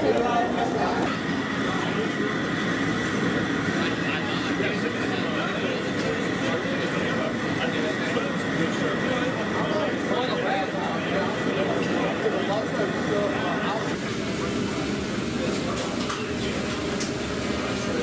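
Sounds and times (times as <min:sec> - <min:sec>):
indistinct chatter of people: 0:00.0 - 0:18.0.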